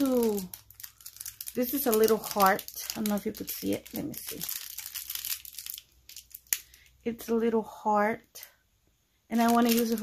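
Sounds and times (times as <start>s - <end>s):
plastic packaging crinkling: 0.0s - 7.0s, 9.4s - 10.0s.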